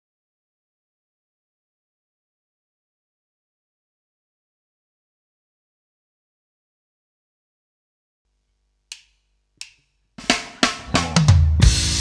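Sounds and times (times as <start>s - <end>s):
drumstick clicks: 8.9s - 9.9s.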